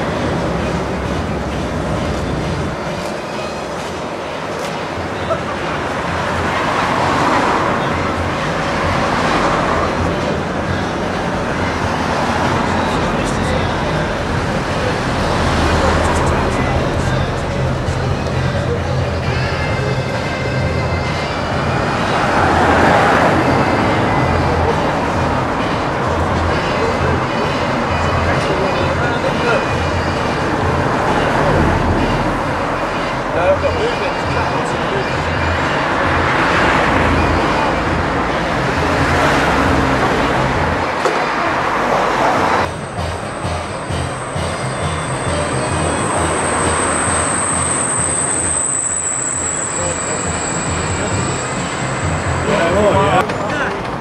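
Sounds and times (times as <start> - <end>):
high-pitched tone: 0.0 - 53.4
people talking: 0.0 - 54.0.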